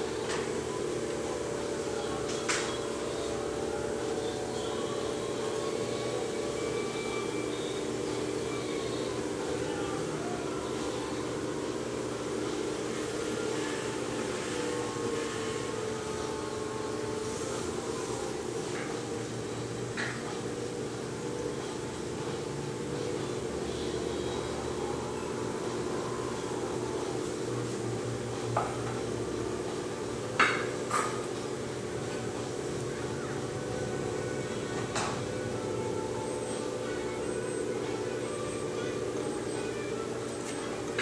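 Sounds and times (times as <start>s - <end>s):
potter's wheel motor humming: 0.0s - 41.0s.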